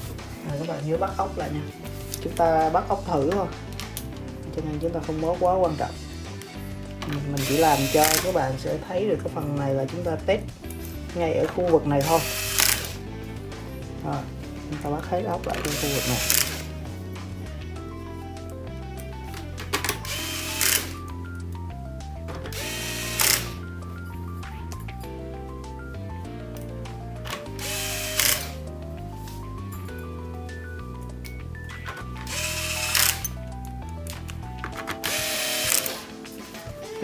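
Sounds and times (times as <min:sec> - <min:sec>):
background music with bass line: 0:00.0 - 0:37.0
electric screwdriver running: 0:07.4 - 0:08.4, 0:12.0 - 0:13.0, 0:15.5 - 0:16.8, 0:19.9 - 0:21.1, 0:22.5 - 0:23.7, 0:27.5 - 0:28.6, 0:32.2 - 0:33.4, 0:35.0 - 0:36.1.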